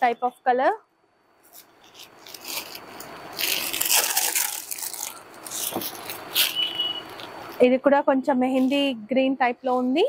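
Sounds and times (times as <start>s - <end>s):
fabric rustling: 1.4s - 7.7s.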